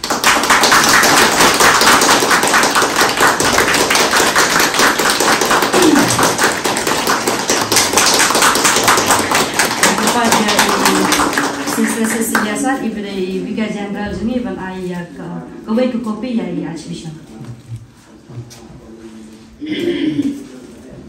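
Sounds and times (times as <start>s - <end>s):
small group applauding: 0.0s - 12.7s.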